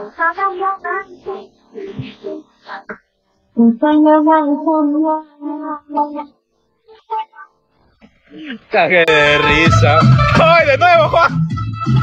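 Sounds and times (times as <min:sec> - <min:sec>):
high sing-song voice: 0:00.0 - 0:07.6.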